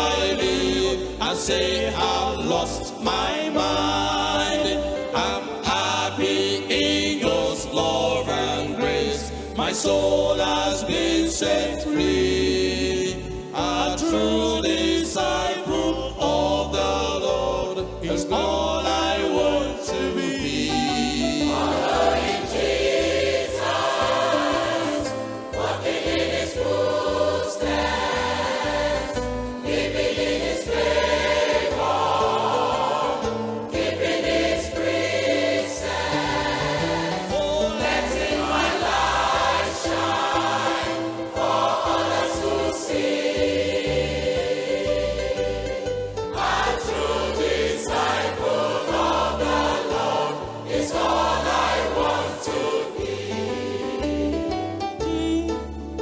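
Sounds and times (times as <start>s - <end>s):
gospel choir singing: 0.0s - 56.0s.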